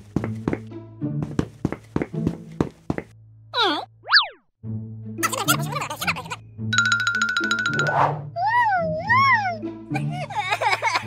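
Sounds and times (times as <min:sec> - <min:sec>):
cartoon warbling squiggle: 0:03.6 - 0:04.4.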